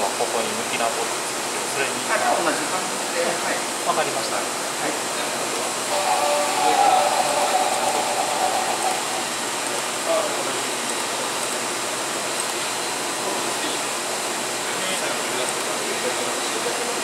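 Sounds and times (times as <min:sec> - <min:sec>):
vacuum pump running: 0:04.6 - 0:17.0.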